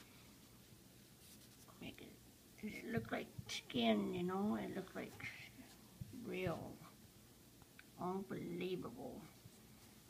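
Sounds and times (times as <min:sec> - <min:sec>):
woman speaking: 0:01.7 - 0:07.0, 0:08.0 - 0:09.4.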